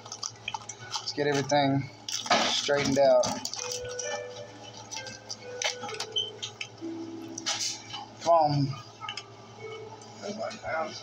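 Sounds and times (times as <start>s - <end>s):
foil packs crinkling: 0.0s - 6.8s.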